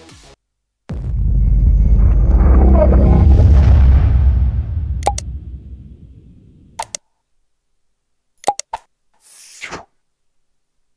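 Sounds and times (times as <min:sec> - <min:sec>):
low rumble: 0:00.9 - 0:06.8
short whoosh: 0:00.9 - 0:06.8
mouse clicks: 0:06.8 - 0:07.0, 0:08.4 - 0:08.9.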